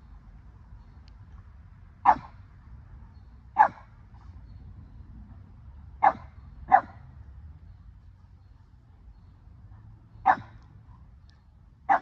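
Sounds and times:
dog barking: 2.0s - 2.3s, 3.6s - 3.8s, 6.0s - 7.0s, 10.2s - 10.6s.

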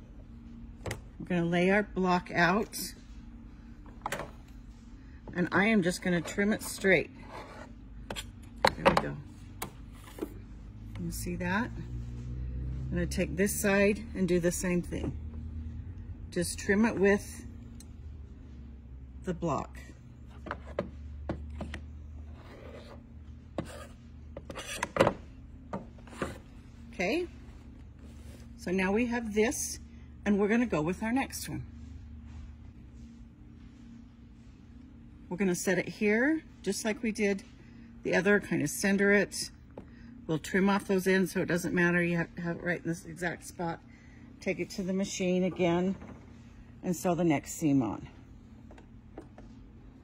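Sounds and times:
faint room hum: 0.0s - 50.0s.

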